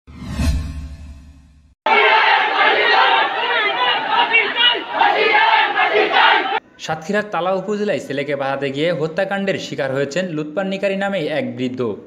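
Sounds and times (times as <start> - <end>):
crowd shouting: 1.9 - 6.6.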